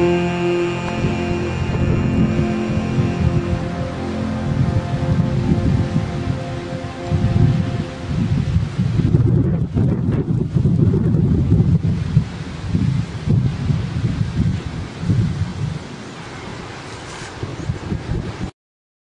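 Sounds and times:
music track: 0.0s - 9.4s
wind buffeting microphone: 1.6s - 16.1s, 17.3s - 18.5s.

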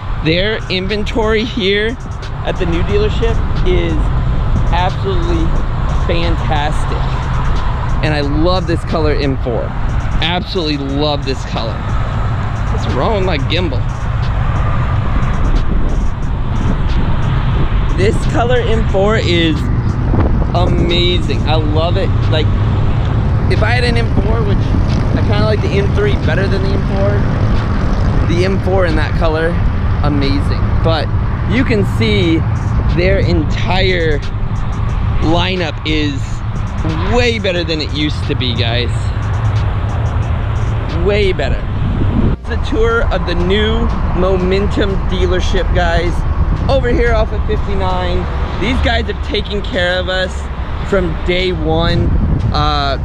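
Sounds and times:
road traffic rumble: 0.0s - 53.0s
wind buffeting microphone: 0.0s - 53.0s.

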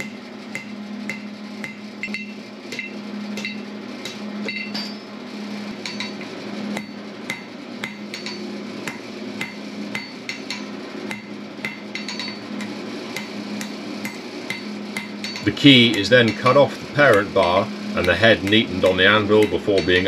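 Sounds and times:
hammer striking steel on anvil: 0.0s - 5.1s, 5.8s - 20.0s
steady low hum: 0.0s - 20.0s.

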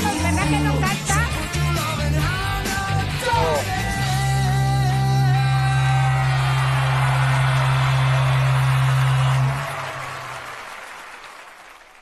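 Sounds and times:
audience applause: 5.8s - 12.0s.

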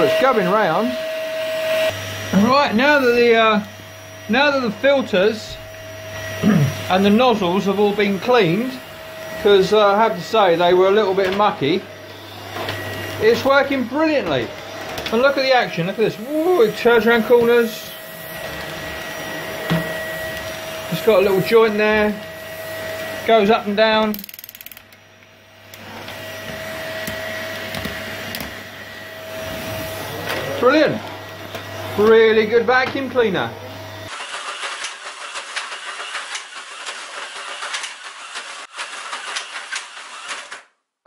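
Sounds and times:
vacuum cleaner on carpet: 0.0s - 24.1s, 25.0s - 34.3s
slot car motors whirring: 34.1s - 40.6s
toy cars crashing: 34.1s - 40.7s.

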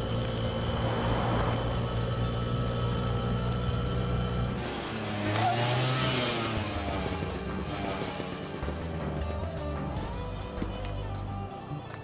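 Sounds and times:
auto-rickshaw engine running: 0.0s - 12.0s.

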